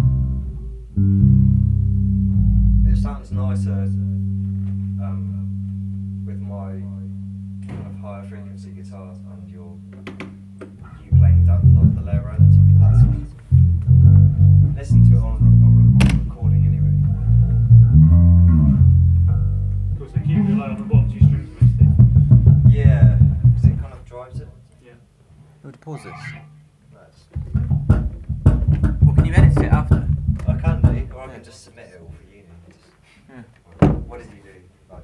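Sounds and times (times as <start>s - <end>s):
electric guitar and bass riff: 0.0s - 23.9s.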